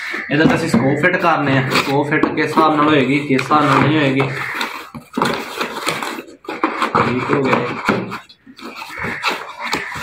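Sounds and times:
cardboard boxes scraping: 0.8 - 10.0.

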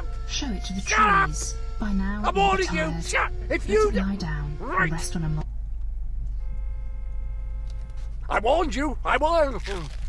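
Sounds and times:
car engine idling: 0.0 - 9.9.

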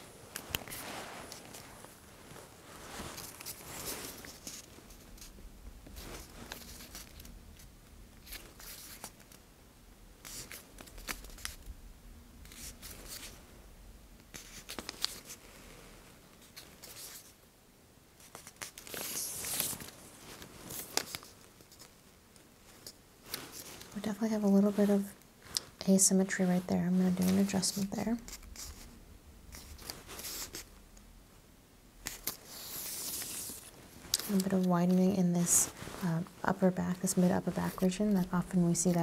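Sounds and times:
tape measure rustling on skin: 0.3 - 9.4, 10.2 - 11.7, 12.4 - 13.4, 14.3 - 15.8, 16.4 - 17.4, 18.2 - 22.0, 22.6 - 30.8, 32.0 - 39.0.

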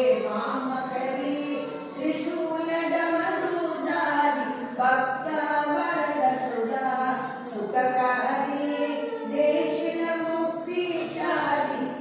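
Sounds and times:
group singing a hymn: 0.0 - 12.0.

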